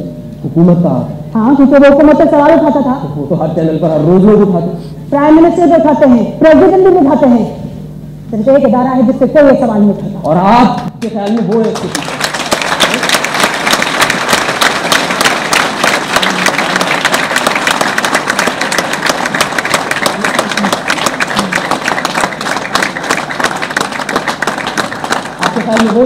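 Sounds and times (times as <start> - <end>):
audience applauding: 11.0 - 26.0.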